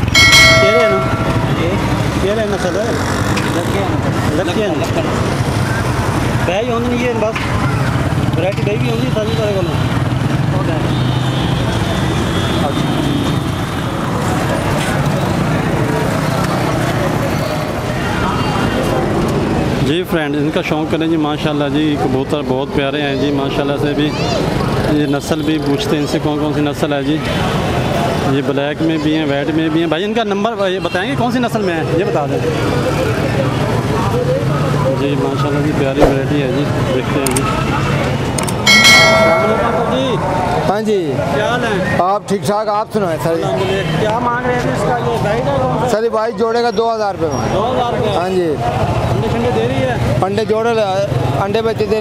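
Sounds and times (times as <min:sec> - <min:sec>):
low rumble of traffic: 0:00.0 - 0:52.0
people talking: 0:00.3 - 0:03.0.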